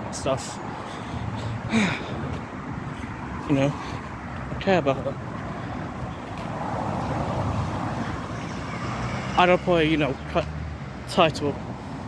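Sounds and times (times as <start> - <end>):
vehicle passing by: 0.5 - 12.0.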